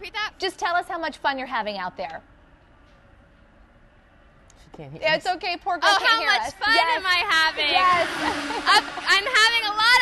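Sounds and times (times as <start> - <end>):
women talking: 5.0 - 10.0.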